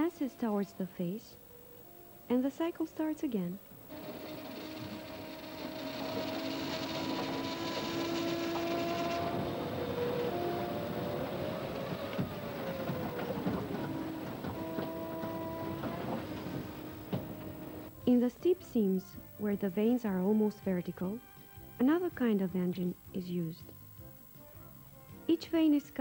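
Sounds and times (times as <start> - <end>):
machinery rumble and hiss: 0.0 - 26.0
motor whines: 3.8 - 17.9
machinery knocks: 3.9 - 17.9.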